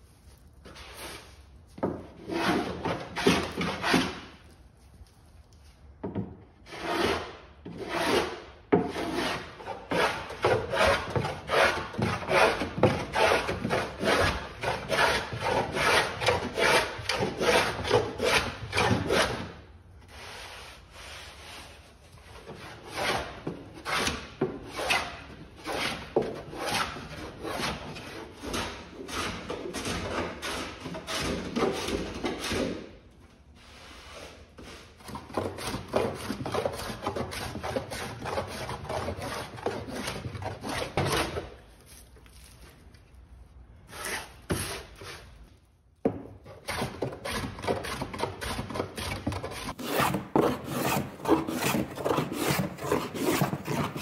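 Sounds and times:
block plane shaving wood: 1.8 - 4.3, 6.6 - 21.7, 22.3 - 32.8, 34.6 - 41.6, 43.9 - 45.3, 46.5 - 54.0.

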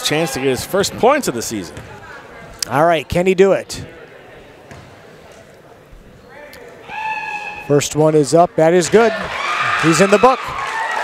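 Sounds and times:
low crowd murmur: 0.0 - 9.8
basketball bouncing on wooden floor: 1.8 - 2.0.

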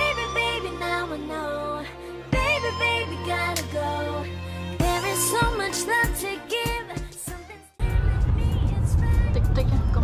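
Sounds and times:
road and tyre noise in car: 7.8 - 10.0.

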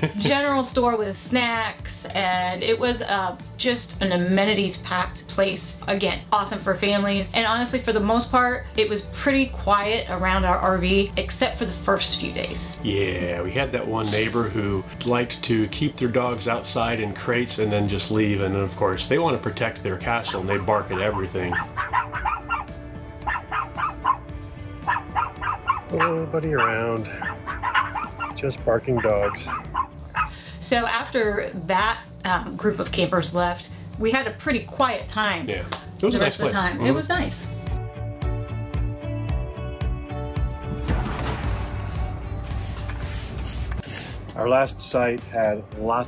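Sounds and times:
background music: 0.0 - 46.0
dogs barking: 20.1 - 30.4.

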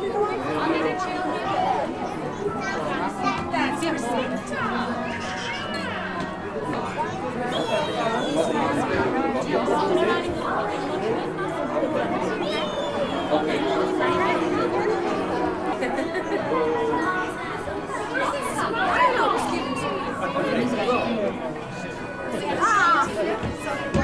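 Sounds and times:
babble of overlapping voices: 0.0 - 24.0.

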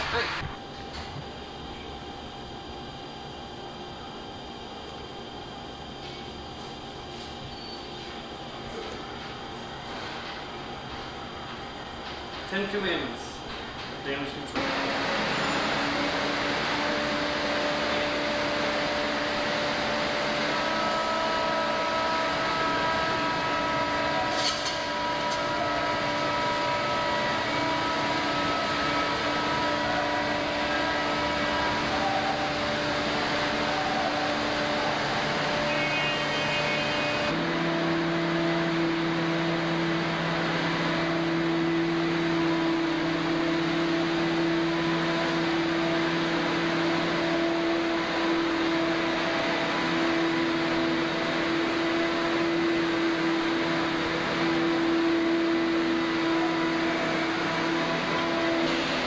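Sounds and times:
machinery hum with loud hiss: 0.0 - 59.0.

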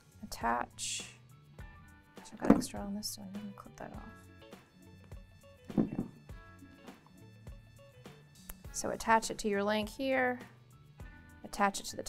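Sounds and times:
background music with steady beat: 0.0 - 12.0
hand tool knock: 5.7 - 6.2.

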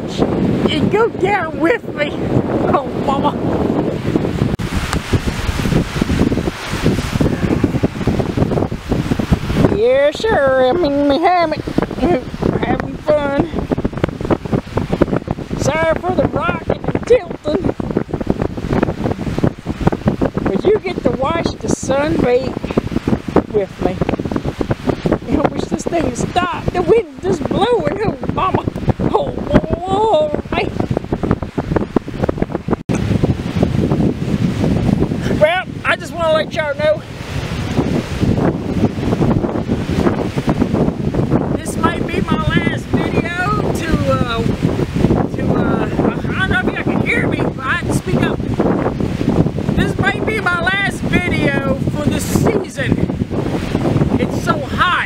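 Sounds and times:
waves washing on shore: 0.0 - 55.0
wind buffeting microphone: 0.0 - 55.0.

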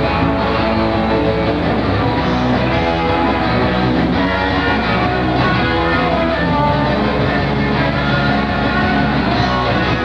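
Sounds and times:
electric guitar: 0.0 - 10.0
live rock band playing: 0.0 - 10.0.

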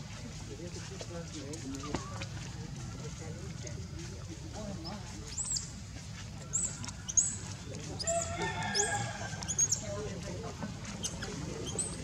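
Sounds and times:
baby monkey squeaking: 8.0 - 9.8, 11.0 - 12.0.

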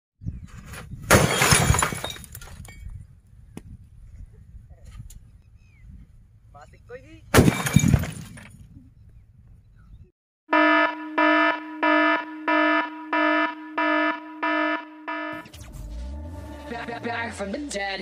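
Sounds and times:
television breaking apart: 1.1 - 2.4.

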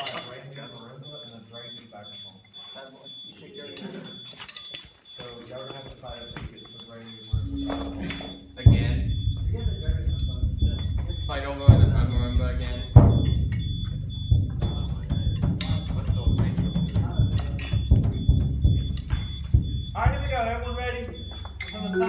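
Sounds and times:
deep drum hits: 7.4 - 18.8.

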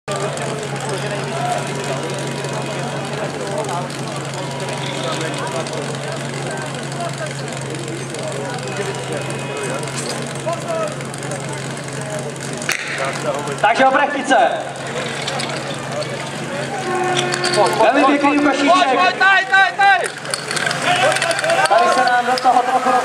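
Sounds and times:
crowd chatter: 0.1 - 23.0
steady engine drone: 0.1 - 23.0.

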